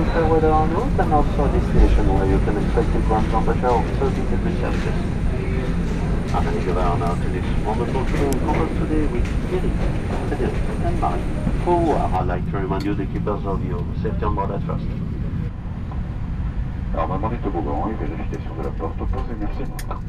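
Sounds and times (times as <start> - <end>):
people talking: 0.0 - 15.0, 17.0 - 20.0
airliner and gate machinery drone: 0.0 - 20.0.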